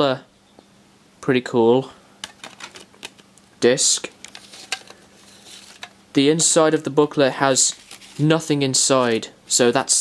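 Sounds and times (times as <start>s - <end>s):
plastic case clicks: 2.2s - 3.2s
faint rustling: 4.1s - 6.0s, 7.5s - 9.3s.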